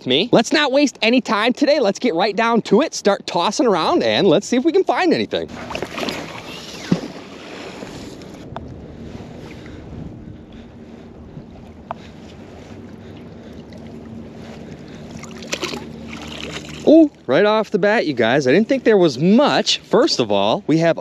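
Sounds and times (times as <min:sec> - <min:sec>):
water noise: 0:00.0 - 0:21.0
wind: 0:00.0 - 0:21.0
magnet splashing into water: 0:15.3 - 0:16.9.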